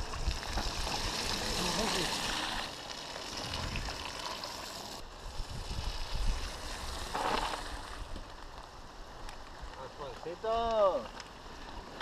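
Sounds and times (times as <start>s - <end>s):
stream water running and lapping: 0.0s - 8.2s.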